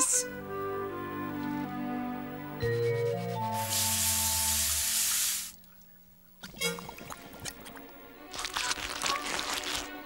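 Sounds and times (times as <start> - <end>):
cartoon background music: 0.0 - 4.9, 6.4 - 10.0
water hissing from hand sprayer: 3.6 - 5.6.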